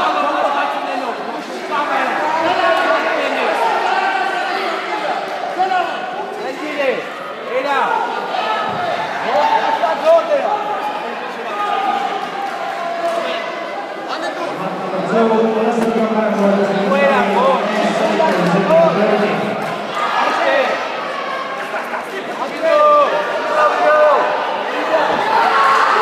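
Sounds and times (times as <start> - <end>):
crowd voices calling out: 0.0 - 26.0.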